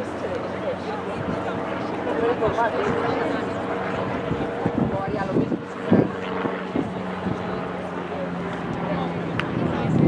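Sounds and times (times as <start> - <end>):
distant engine drone: 0.0 - 10.0
faint voices: 0.0 - 10.0.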